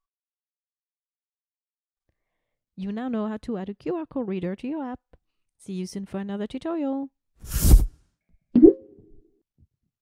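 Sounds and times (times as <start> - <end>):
whoosh: 7.5 - 7.9
cartoon-like pop: 8.6 - 9.1.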